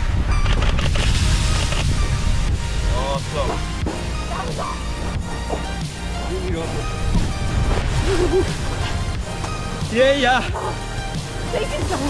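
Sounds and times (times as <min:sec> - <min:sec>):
wind rumbling on microphone: 0:00.0 - 0:09.9.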